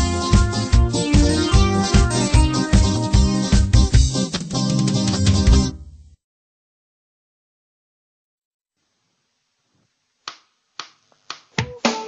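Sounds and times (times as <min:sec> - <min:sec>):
band playing loudly: 0:00.0 - 0:05.8.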